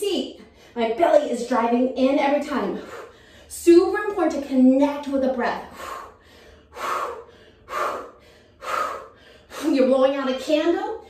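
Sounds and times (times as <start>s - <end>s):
woman's sharp breaths blown out: 5.7s - 9.7s.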